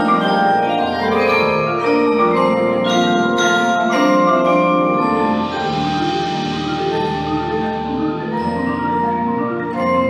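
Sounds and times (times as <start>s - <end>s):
marimbas playing chords: 0.0s - 10.0s
sharp bright accents: 0.6s - 8.9s.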